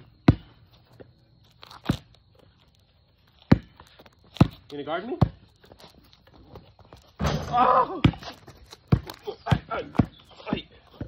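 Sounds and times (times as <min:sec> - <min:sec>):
basketball bouncing on concrete: 0:00.0 - 0:00.8, 0:03.4 - 0:05.6, 0:06.5 - 0:11.0.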